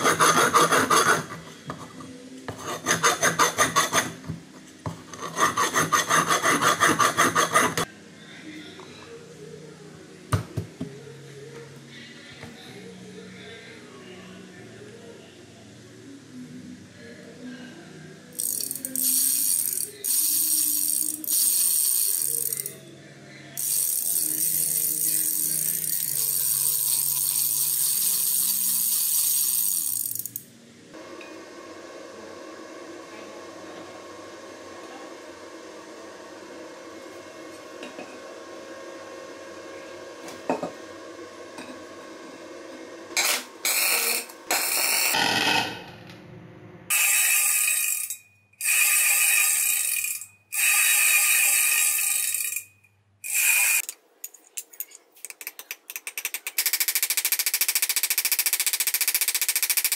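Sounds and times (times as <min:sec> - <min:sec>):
freewheel ratchet clicking: 0:18.4 - 0:22.8, 0:23.6 - 0:30.5, 0:46.9 - 0:54.0, 0:55.4 - 0:59.9.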